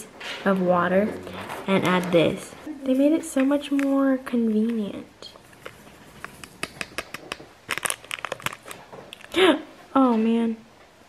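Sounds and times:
plastic sachet crinkling: 0:05.3 - 0:09.4.

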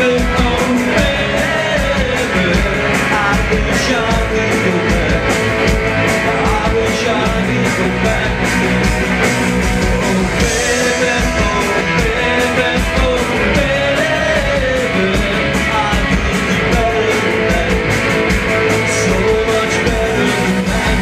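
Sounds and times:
man singing: 0:00.0 - 0:08.9, 0:09.8 - 0:21.0
distorted electric guitars: 0:00.0 - 0:21.0
fast driving drumbeat: 0:00.0 - 0:21.0.

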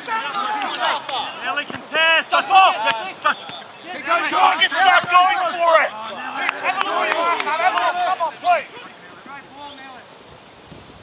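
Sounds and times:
men shouting: 0:00.0 - 0:09.5.

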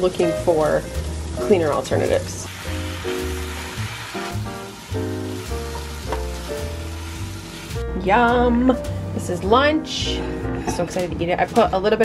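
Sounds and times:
vegetables sizzling in a frying pan: 0:00.0 - 0:08.8
background music: 0:00.0 - 0:12.0.

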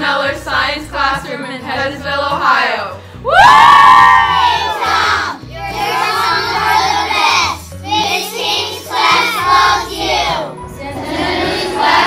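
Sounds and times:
background music with bass line: 0:00.0 - 0:12.0
children singing together: 0:04.2 - 0:12.0.

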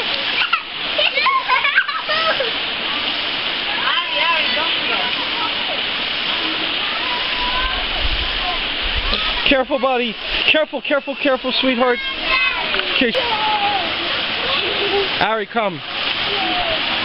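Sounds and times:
children calling out: 0:00.0 - 0:05.8, 0:06.4 - 0:10.2, 0:11.1 - 0:15.2, 0:16.0 - 0:17.0
children splashing in water: 0:00.0 - 0:17.0
mountain stream rushing: 0:00.0 - 0:17.0.

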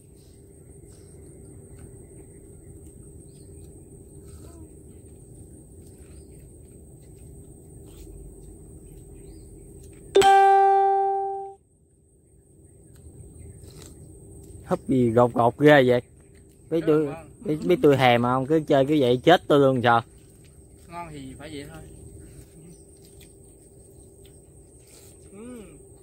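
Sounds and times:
loud ringing musical note: 0:10.2 - 0:11.6.

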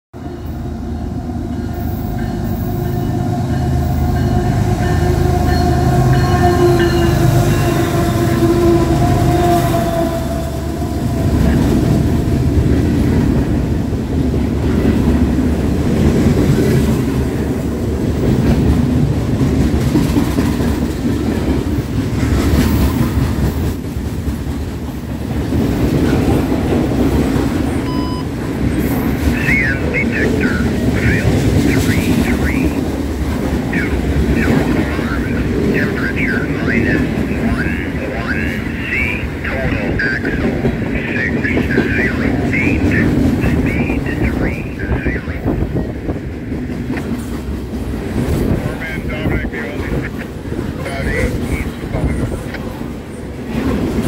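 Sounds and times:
locomotives droning: 0:00.2 - 0:22.9, 0:24.5 - 0:54.0
freight cars rumbling over rails: 0:00.2 - 0:54.0.

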